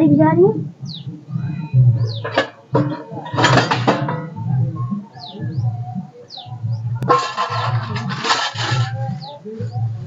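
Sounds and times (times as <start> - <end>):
noisy rustle: 7.0 - 10.0.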